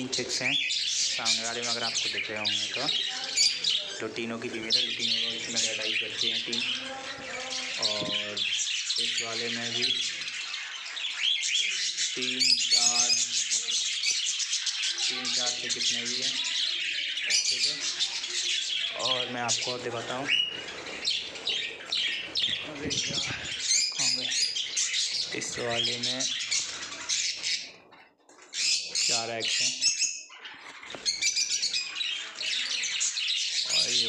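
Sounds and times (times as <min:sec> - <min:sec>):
budgerigars chirping: 0:00.0 - 0:34.0.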